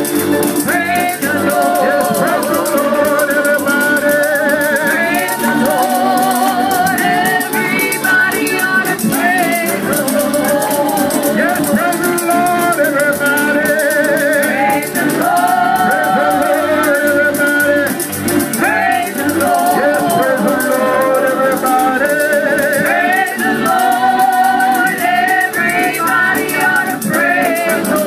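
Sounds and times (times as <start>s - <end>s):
tambourine shaking: 0.0s - 28.0s
women singing with vibrato: 0.0s - 28.0s.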